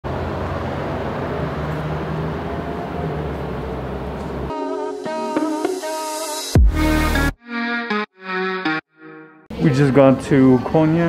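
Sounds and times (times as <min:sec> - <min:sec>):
street traffic noise: 0:00.0 - 0:04.6.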